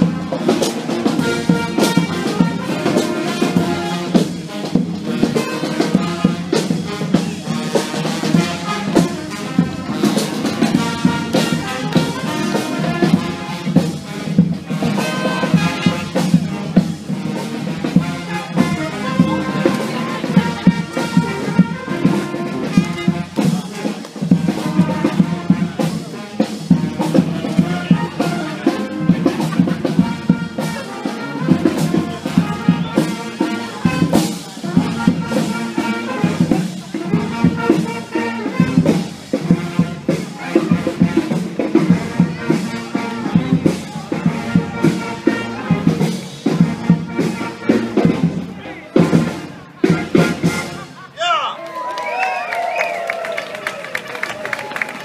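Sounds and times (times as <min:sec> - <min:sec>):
music with steady drum beat: 0:00.0 - 0:51.2.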